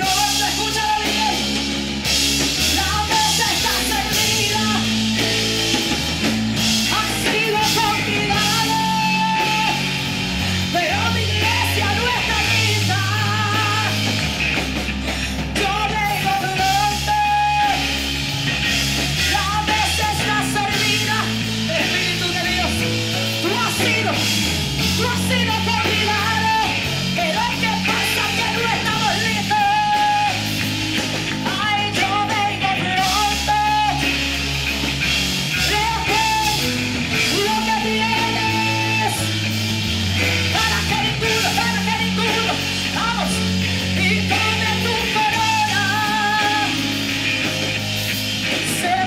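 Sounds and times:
woman singing into a microphone: 0.0s - 1.8s, 2.6s - 5.4s, 6.6s - 14.2s, 15.1s - 18.2s, 19.2s - 34.4s, 35.5s - 39.6s, 40.2s - 47.1s, 48.4s - 49.0s
amplified band with guitar: 0.0s - 49.0s
low bass notes: 0.0s - 49.0s.

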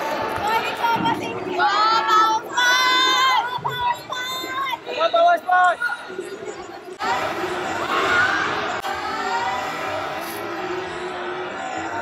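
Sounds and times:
crowd in a large hall: 0.0s - 12.0s.

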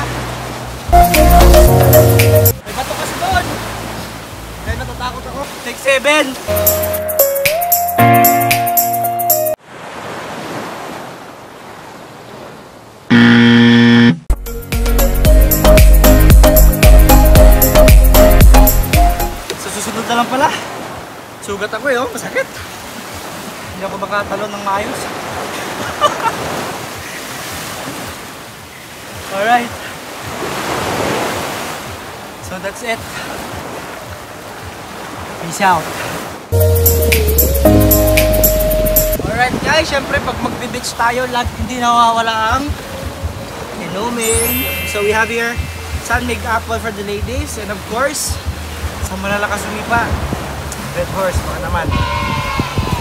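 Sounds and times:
surf and wind hiss: 0.0s - 7.8s, 19.4s - 53.0s
background music: 0.9s - 2.6s, 6.5s - 9.6s, 14.3s - 19.4s, 36.5s - 39.2s, 42.5s - 47.9s
small waves washing on sand: 2.6s - 6.6s, 9.6s - 13.0s, 19.4s - 36.6s, 39.2s - 51.7s
wrong-answer buzzer: 13.1s - 14.3s.

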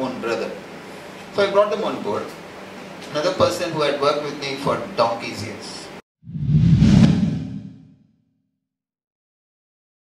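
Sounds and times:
deep whoosh: 6.2s - 8.0s.

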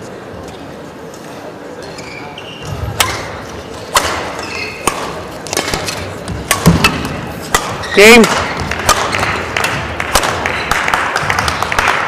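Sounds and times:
shoes squeaking on court: 1.8s - 6.4s, 7.0s - 8.7s
racket hitting shuttlecock: 2.6s - 12.0s.

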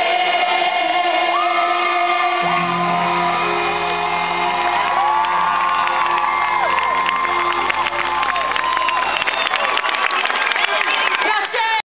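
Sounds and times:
audience cheering and whooping: 1.3s - 11.6s
band holding final chord: 2.4s - 9.0s
audience clapping: 2.4s - 11.8s.

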